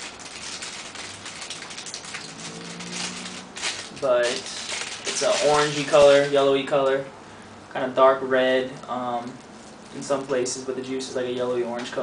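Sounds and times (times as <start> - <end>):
plastic pouch crinkling: 0.0 - 6.7, 9.3 - 10.4.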